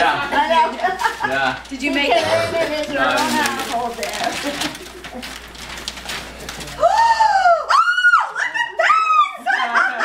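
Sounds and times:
woman squealing: 6.8s - 9.4s.

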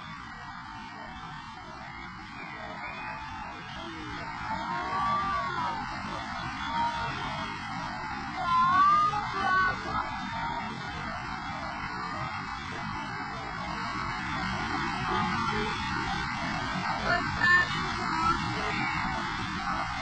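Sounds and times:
river rushing over a drop: 0.0s - 20.0s.

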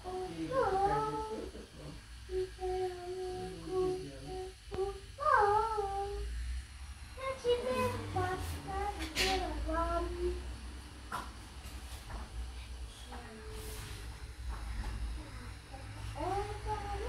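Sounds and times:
girl humming a tune: 0.0s - 1.5s, 2.2s - 6.3s, 7.2s - 10.5s, 15.2s - 17.0s.

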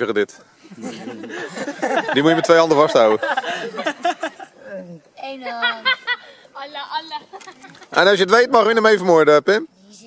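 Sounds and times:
light chuckling: 0.7s - 4.6s.

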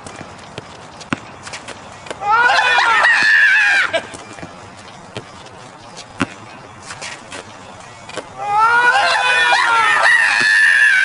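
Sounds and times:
basketball bouncing on concrete: 0.0s - 2.2s, 3.0s - 7.5s, 10.3s - 10.7s
steady outdoor hiss: 0.0s - 11.0s.

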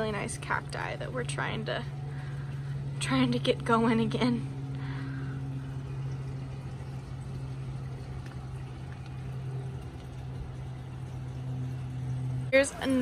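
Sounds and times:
low machine hum: 0.0s - 13.0s.

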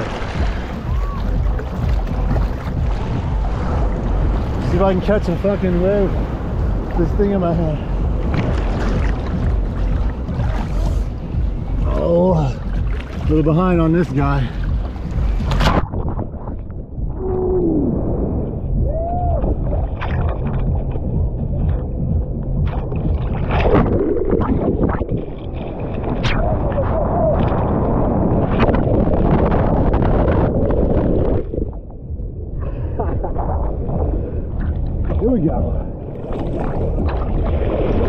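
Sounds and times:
churning surf: 0.0s - 31.9s, 32.6s - 38.0s
water splashing: 0.0s - 31.9s, 33.4s - 38.0s
underwater gurgling: 0.0s - 38.0s.

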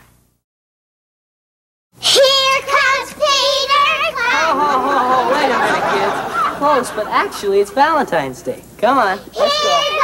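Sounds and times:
children chattering: 3.4s - 7.1s, 9.3s - 10.0s.

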